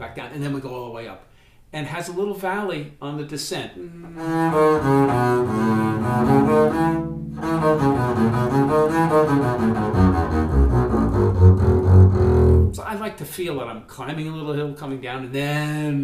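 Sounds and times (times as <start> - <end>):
bowed double bass scale: 3.8 - 12.9.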